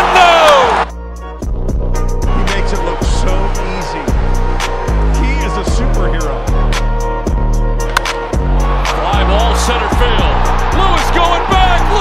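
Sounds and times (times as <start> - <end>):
music with heavy bass and fast beat: 0.0 - 12.0.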